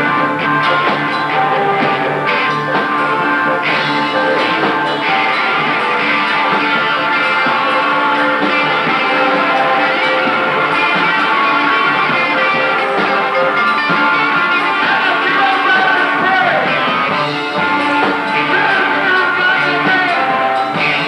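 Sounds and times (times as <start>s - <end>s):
electric guitar: 0.0s - 21.0s
live rock band playing: 0.0s - 21.0s.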